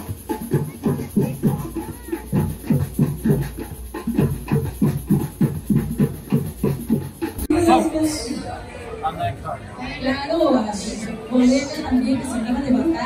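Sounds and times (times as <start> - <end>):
drum group playing: 0.0 - 7.8.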